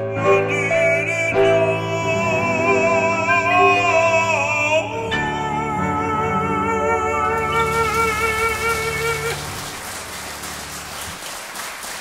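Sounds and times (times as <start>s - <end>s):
piano chord: 0.0s - 11.2s
audience applause: 7.2s - 12.0s.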